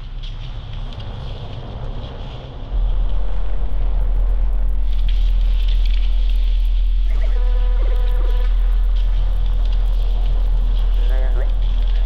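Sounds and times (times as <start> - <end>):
deep low drone: 0.0 - 12.0.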